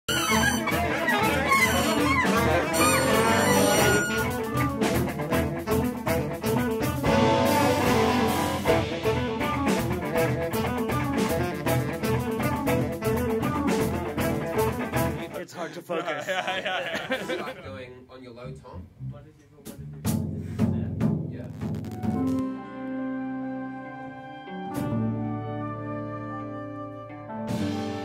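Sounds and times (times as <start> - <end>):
synthesizer lead bending in pitch: 0.1 - 4.7
electric bass: 0.1 - 15.2, 18.4 - 22.6
drum kit: 0.1 - 15.3, 19.6 - 22.5, 27.5 - 28.0
electric guitar: 0.1 - 15.3, 21.8 - 28.0.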